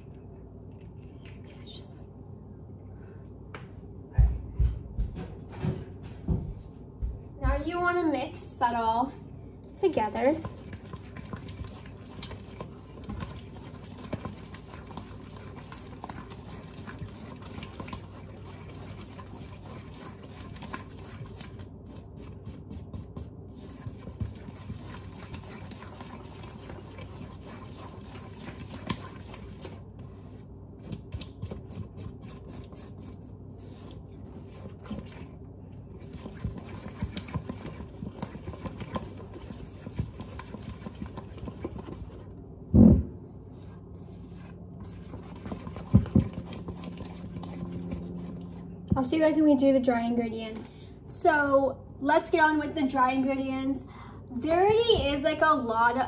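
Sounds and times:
utensil scraping batter in metal bowl: 9.8s - 42.3s, 43.3s - 48.7s.

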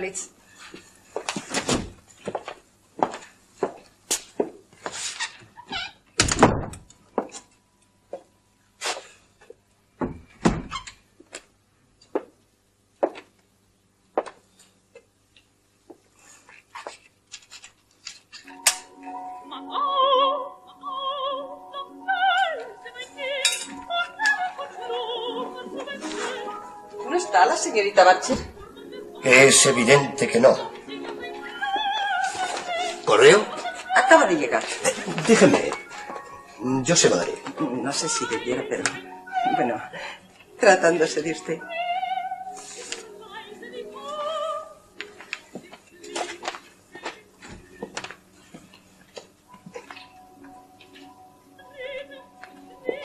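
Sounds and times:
footsteps on stage floor: 0.7s - 5.1s
door thud: 6.2s - 6.9s
woman singing operatically: 19.1s - 35.2s, 37.4s - 40.0s, 40.6s - 46.6s, 51.6s - 53.0s.

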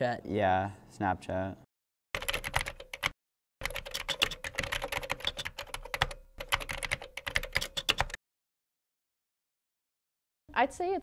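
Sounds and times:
keyboard typing: 2.2s - 8.2s.

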